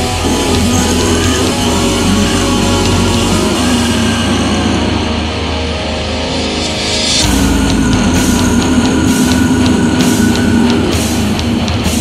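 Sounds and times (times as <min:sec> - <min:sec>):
drums playing loudly: 0:00.0 - 0:05.6, 0:06.2 - 0:12.0
bass guitar: 0:00.0 - 0:12.0
distorted guitars: 0:00.0 - 0:12.0
sharp cymbal strikes: 0:06.1 - 0:12.0.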